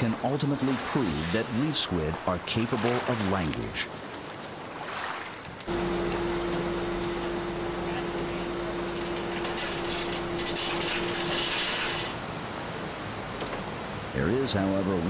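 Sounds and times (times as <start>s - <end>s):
loud hiss of water: 0.0s - 2.1s, 10.6s - 12.4s
water rushing in wake: 0.0s - 15.0s
boat engine humming: 5.6s - 13.9s.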